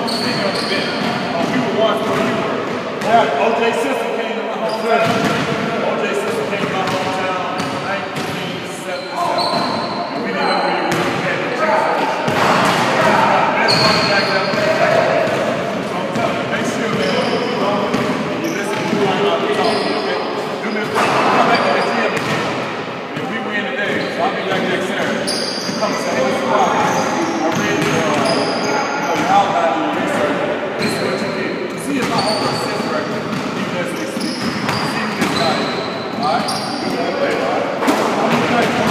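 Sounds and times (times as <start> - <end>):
man talking in echoing gym: 0.0 - 38.9
basketballs bouncing on wood floor: 0.1 - 3.2, 5.0 - 5.6, 12.3 - 19.8, 22.2 - 22.6, 27.5 - 28.5, 32.0 - 37.4, 38.0 - 38.9.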